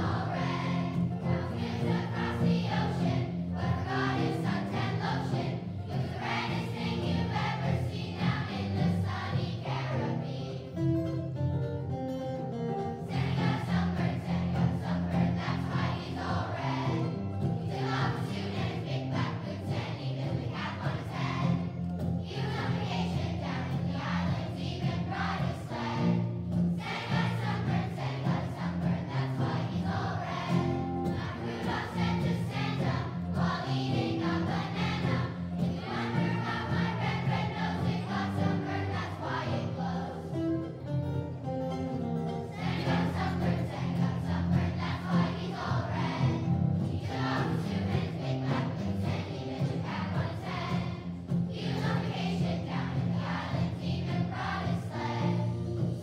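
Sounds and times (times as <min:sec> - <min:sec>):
children's choir singing: 0:00.0 - 0:11.4, 0:12.4 - 0:56.0
guitars: 0:00.0 - 0:56.0.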